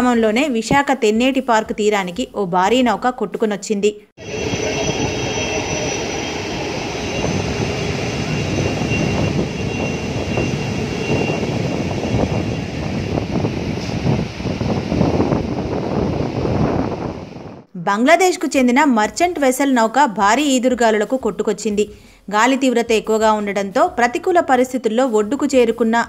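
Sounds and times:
faint high whine: 4.2 - 14.1
surf and wind roaring: 4.2 - 17.7.

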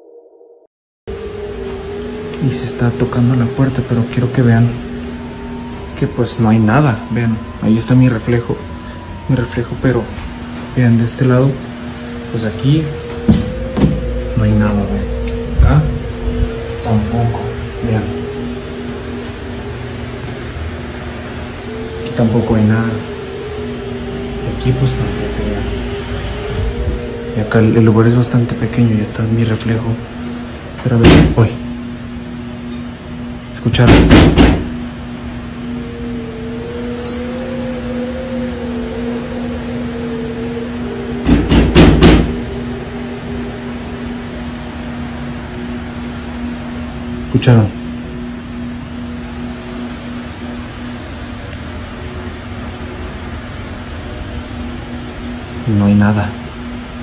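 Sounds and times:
droning hum: 1.1 - 57.0.

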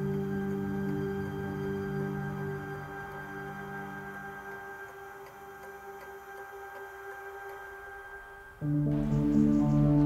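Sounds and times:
faint even ticking: 0.0 - 9.6
soft ambient music: 0.0 - 10.0.

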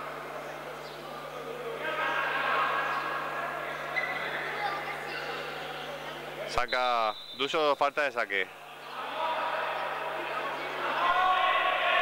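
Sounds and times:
steady low hum: 0.0 - 10.8
indistinct voices in sports hall: 0.0 - 12.0.

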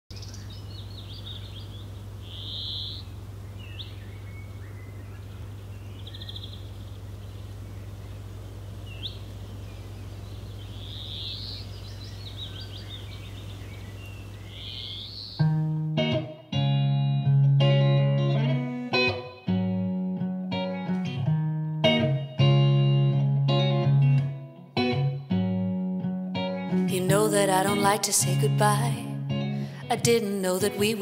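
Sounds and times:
small birds chirping: 0.1 - 15.5
electric guitar plucked chord: 15.4 - 31.0.

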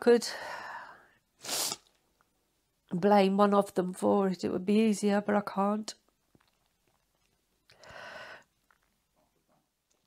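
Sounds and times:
sharp intake of breath: 0.4 - 1.8.

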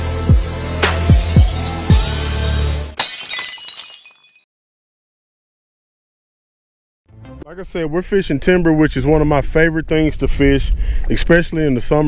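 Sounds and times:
tinkling high-pitched ringing: 0.0 - 4.4
glass shattering: 2.9 - 4.5.

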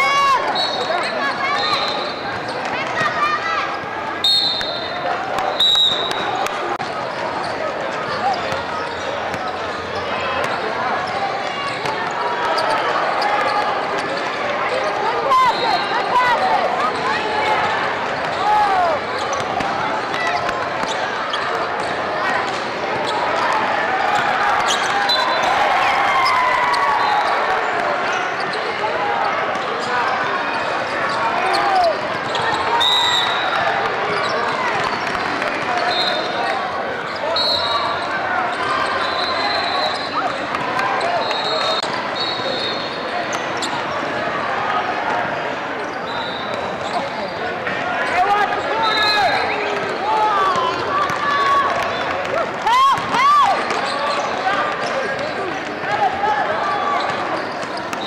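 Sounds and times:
babble of many voices: 0.0 - 58.0.

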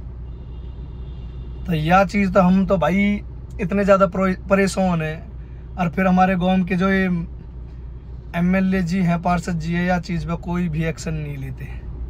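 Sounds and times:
man talking: 1.7 - 7.4, 8.4 - 11.8.

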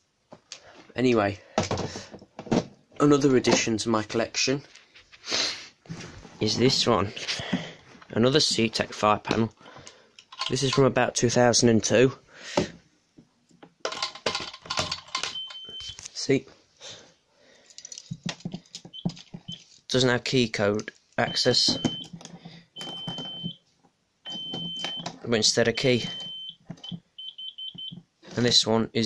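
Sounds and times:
fire alarm panel buzzer: 24.3 - 25.1, 26.1 - 28.0.

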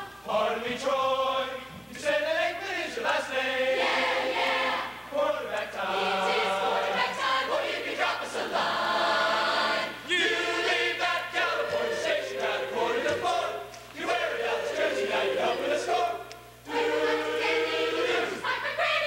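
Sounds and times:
choir singing: 0.0 - 19.0.

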